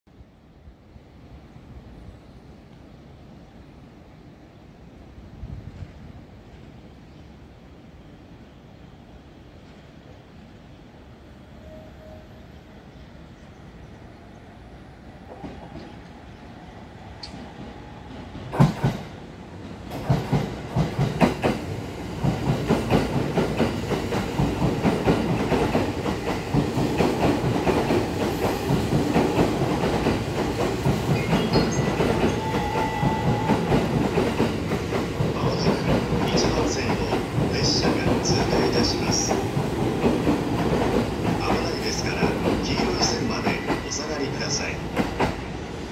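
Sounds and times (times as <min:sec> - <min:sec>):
train wheels clattering: 0:17.2 - 0:44.0.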